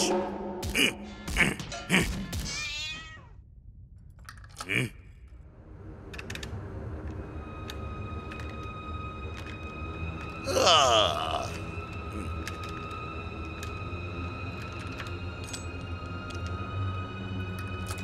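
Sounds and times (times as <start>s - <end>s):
grunt: 4.6s - 5.0s, 10.5s - 12.3s.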